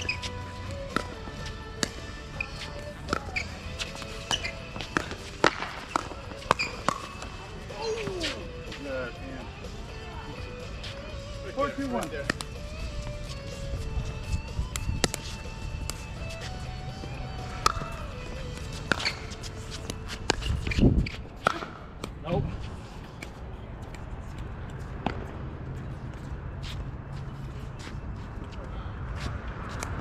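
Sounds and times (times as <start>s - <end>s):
shoe scuffs on hard court: 0.0s - 8.9s, 10.7s - 21.8s.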